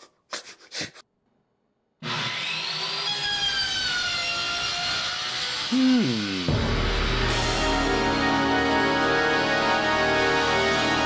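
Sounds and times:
power saw cutting wood: 2.0 - 11.0.

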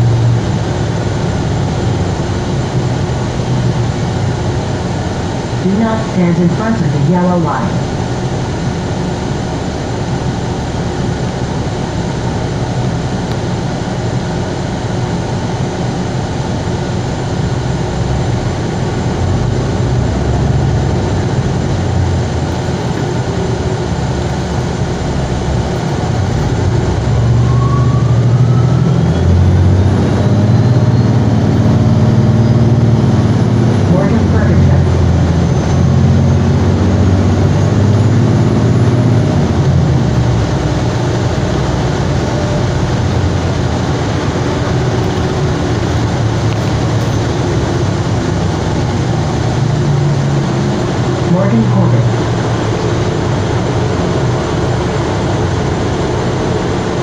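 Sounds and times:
bus drivetrain and road noise: 0.0 - 57.0
faint rising whine: 0.0 - 57.0.

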